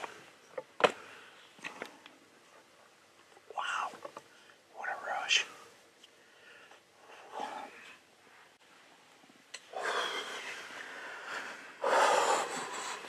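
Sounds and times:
person breathing heavily: 5.5 - 8.1, 9.7 - 13.0.

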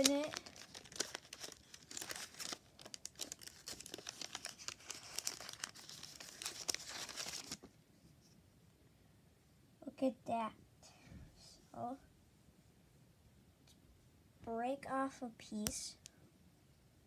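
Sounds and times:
wrapper crinkling and tearing: 0.0 - 7.7.

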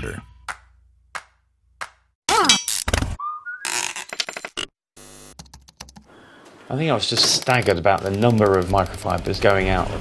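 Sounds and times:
clatter of clicks: 7.1 - 9.6.

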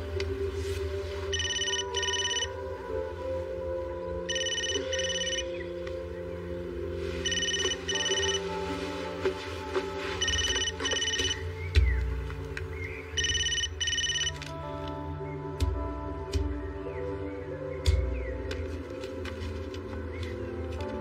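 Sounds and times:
background music: 0.0 - 21.0
phone ringing: 1.3 - 2.6, 4.3 - 5.5, 7.2 - 8.5, 10.2 - 11.4, 13.2 - 14.4.

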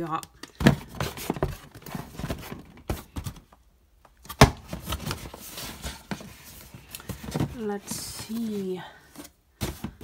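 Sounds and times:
shoe boxes knocking and clicking: 0.5 - 3.6, 9.6 - 10.0
cardboard rustling: 0.6 - 3.6, 4.2 - 10.0.

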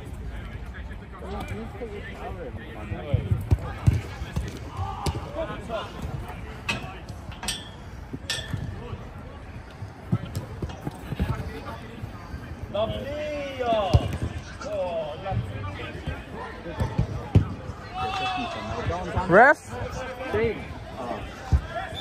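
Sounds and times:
players shouting: 3.6 - 6.9, 12.7 - 22.0
football kicked on artificial turf: 13.8 - 14.4.

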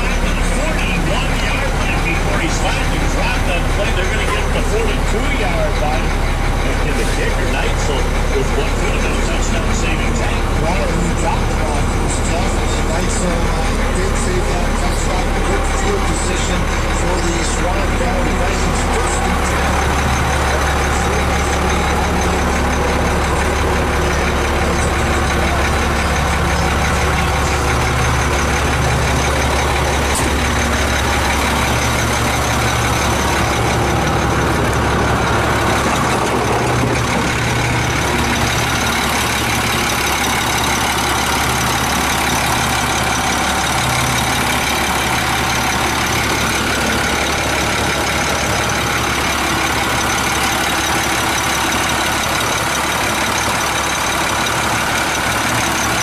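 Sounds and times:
truck engine idling: 0.0 - 56.0.

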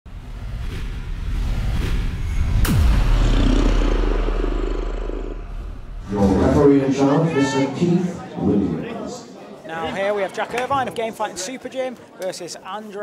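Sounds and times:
low rumble: 0.1 - 6.6
long low boom: 0.1 - 6.8
hit with falling pitch sweep: 0.7 - 6.1.

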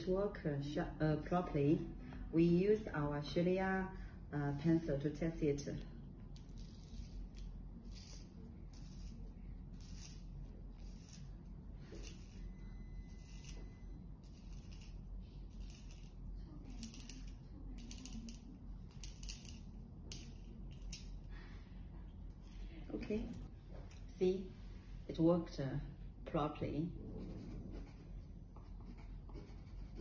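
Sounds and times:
pencil sharpener shaving wood: 6.4 - 18.4.

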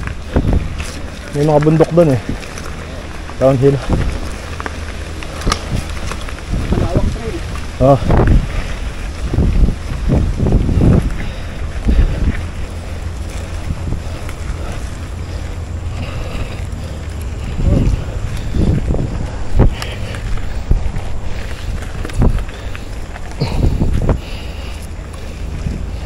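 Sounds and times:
tyre rumble on dirt trail: 0.0 - 26.0
wind rushing over microphone: 0.0 - 26.0.

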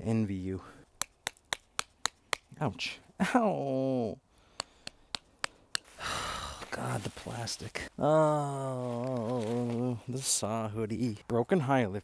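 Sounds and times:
person saying ow: 8.0 - 10.0.

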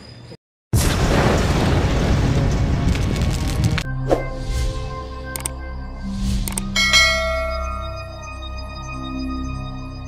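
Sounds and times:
background music: 3.2 - 10.0
bell ding: 6.8 - 8.6.

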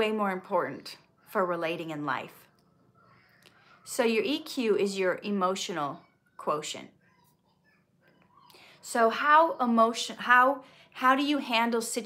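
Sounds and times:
woman speaking: 0.0 - 2.5, 8.5 - 12.0
faint breath: 8.4 - 8.8.

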